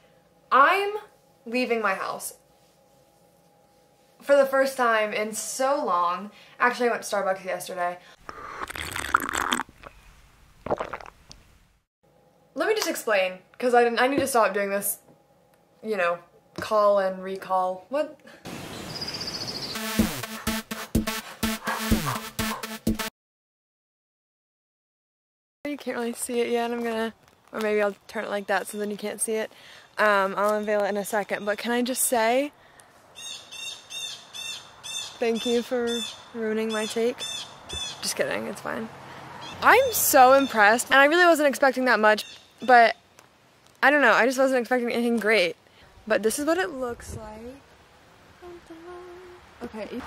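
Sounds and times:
slurping drink through straw: 8.2 - 10.0, 10.7 - 11.2
person speaking: 48.4 - 50.0.

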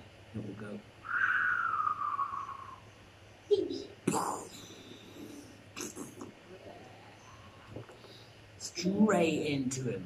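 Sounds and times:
man making falling whistle sound: 1.0 - 2.8.

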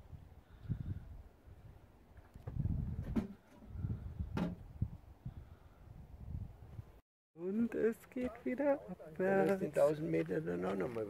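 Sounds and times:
wind buffeting microphone: 0.0 - 7.0.

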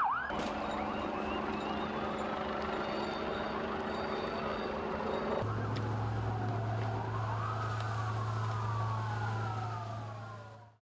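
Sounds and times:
police siren wailing: 0.0 - 10.8.

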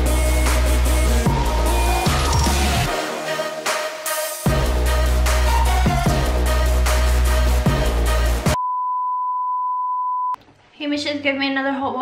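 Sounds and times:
steady test-tone beep: 8.6 - 10.4.

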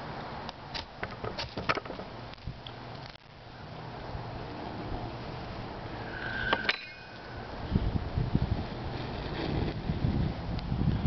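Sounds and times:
knife scraping fire steel: 5.9 - 7.7.

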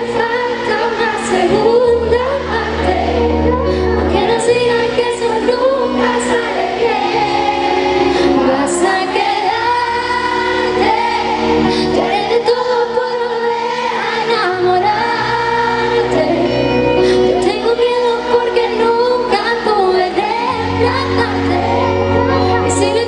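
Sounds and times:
woman singing a pop ballad: 0.0 - 7.4, 8.0 - 23.0.

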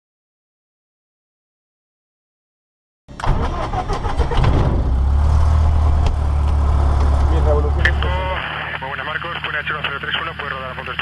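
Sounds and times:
propeller aircraft engine idling: 5.7 - 11.0.

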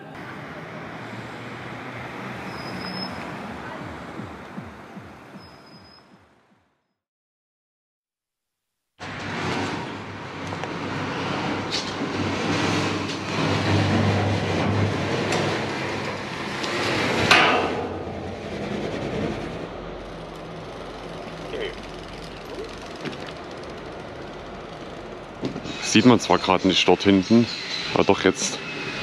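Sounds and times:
vehicle passing: 0.0 - 5.6, 9.0 - 29.0
traffic hum: 0.0 - 6.7, 9.0 - 29.0
indistinct voices: 19.6 - 28.7.

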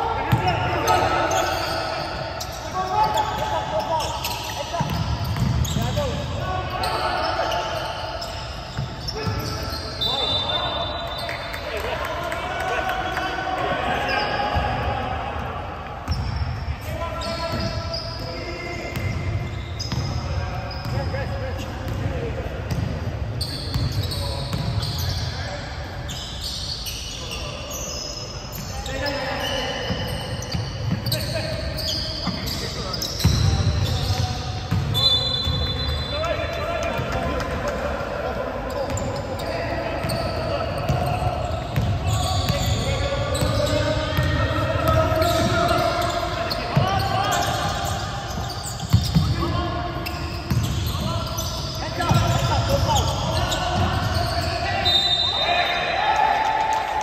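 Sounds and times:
players' voices in a hall: 0.0 - 57.0.

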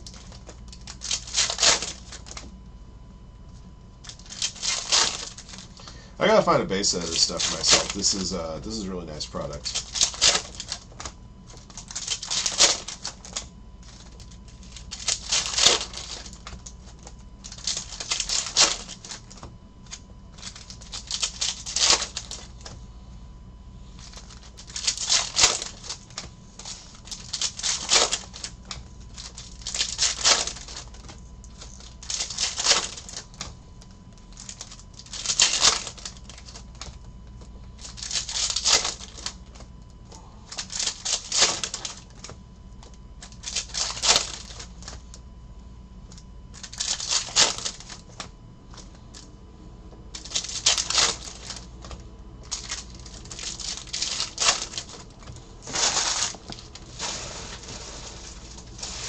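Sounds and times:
foil wrappers crinkling and tearing: 0.0 - 2.5, 4.0 - 22.8, 23.9 - 39.7, 40.5 - 45.1, 46.5 - 49.3, 50.1 - 59.0
card stacks rustling: 0.0 - 2.6, 3.5 - 22.8, 23.8 - 45.2, 46.1 - 49.3, 50.1 - 59.0.

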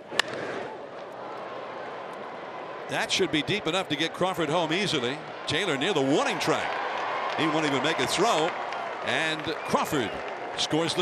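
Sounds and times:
crowd noise: 0.0 - 11.0
bat hitting baseball: 0.1 - 0.5.

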